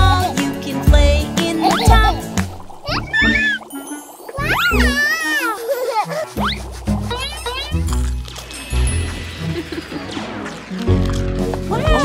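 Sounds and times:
cartoon background music: 0.0 - 12.0
voiced call rising and falling: 2.8 - 5.6.

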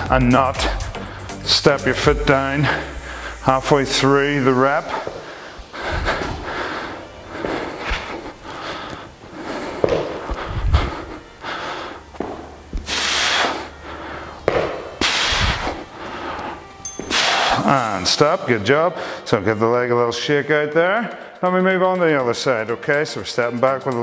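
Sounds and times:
man breathing hard: 0.0 - 1.5, 2.6 - 3.5, 4.8 - 17.8, 19.0 - 19.3
forceful exhalations: 2.6 - 3.5, 4.8 - 17.8
feet thudding on gym floor: 9.8 - 10.9, 12.1 - 13.2, 14.4 - 15.8.

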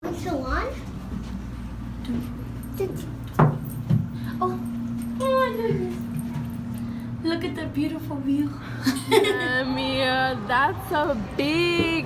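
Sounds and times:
elevator humming: 0.1 - 12.0.

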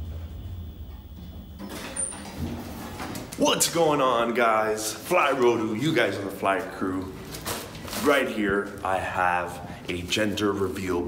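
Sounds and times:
elevator car hum: 0.0 - 3.3
elevator doors sliding open: 0.0 - 3.5.

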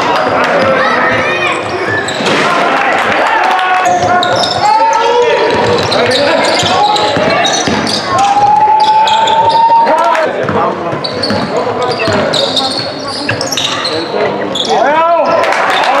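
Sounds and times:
shoes squeaking: 0.0 - 2.5, 3.8 - 16.0
voices calling out: 0.0 - 16.0.

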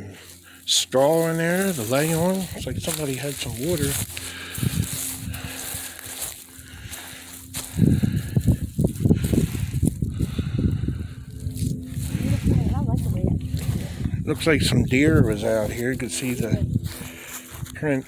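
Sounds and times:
buffeting rumble on microphone: 0.0 - 18.0
faint steady hum: 0.0 - 18.0.

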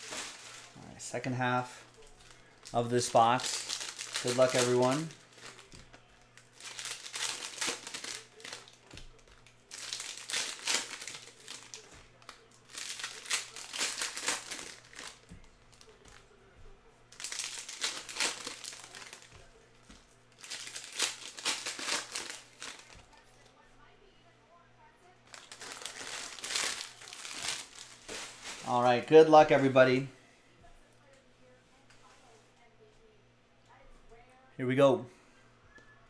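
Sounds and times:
foil wrappers crinkling: 0.0 - 16.4, 17.1 - 23.2, 25.3 - 30.0.

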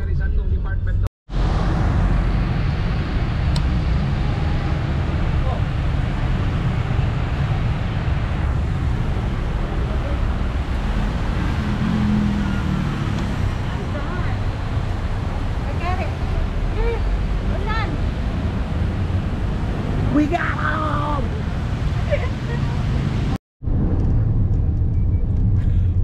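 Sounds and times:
street traffic noise: 0.0 - 26.0
wind rumbling on microphone: 0.0 - 26.0.

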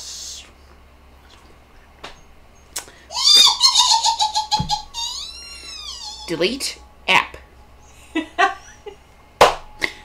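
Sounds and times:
woman giggling: 3.3 - 6.4, 8.0 - 9.0.

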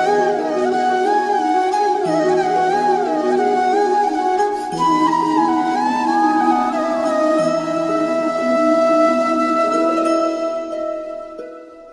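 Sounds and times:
flute holding long note: 0.0 - 11.6
soft musical accompaniment: 0.0 - 11.9.

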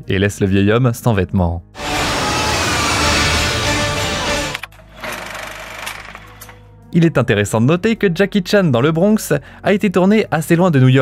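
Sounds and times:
film soundtrack music: 1.5 - 11.0
pulsing mechanical rumble: 1.8 - 4.6.

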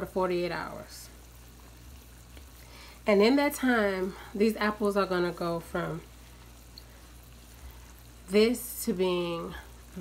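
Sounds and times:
water boiling in pot: 0.0 - 10.0.

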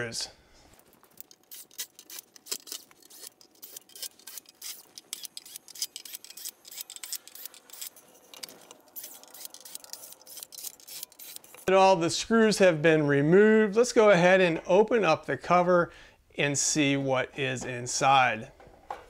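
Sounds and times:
screws clicking and scraping: 1.0 - 11.7.

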